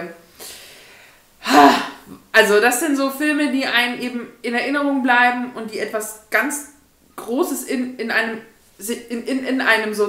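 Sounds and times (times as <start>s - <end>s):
woman breathing: 0.3s - 2.2s
woman breathy exclamation: 1.4s - 2.0s
woman speaking: 1.5s - 10.0s.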